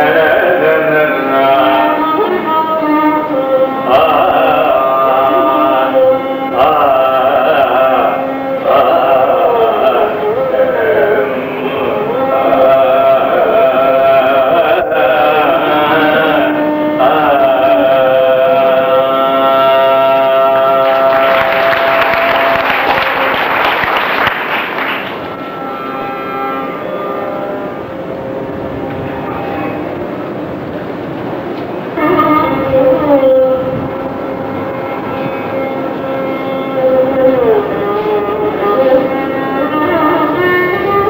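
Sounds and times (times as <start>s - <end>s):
man singing: 0.0s - 22.7s
tanpura drone: 0.0s - 41.0s
violin: 0.0s - 41.0s.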